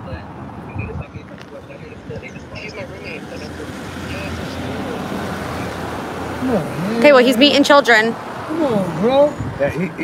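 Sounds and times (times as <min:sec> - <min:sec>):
road vehicle rushing: 0:00.0 - 0:10.0
man speaking: 0:00.8 - 0:05.2.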